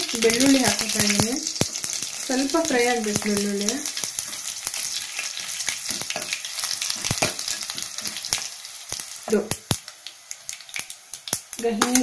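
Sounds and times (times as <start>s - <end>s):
seeds sizzling and popping in oil: 0.0s - 12.0s.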